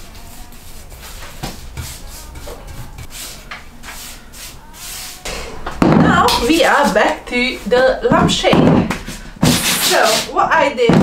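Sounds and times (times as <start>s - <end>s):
paintbrush rubbing swishes: 0.0s - 5.6s.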